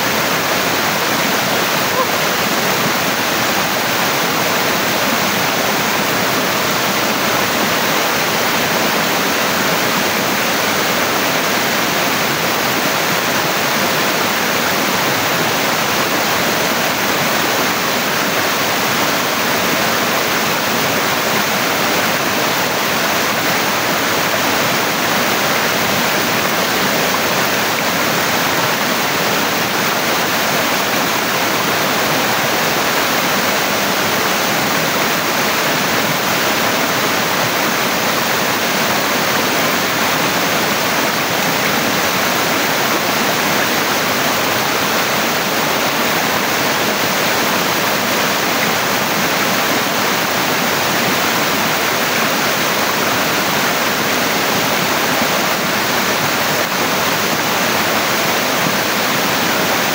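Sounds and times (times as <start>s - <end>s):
waterfall rushing: 0.0s - 59.9s.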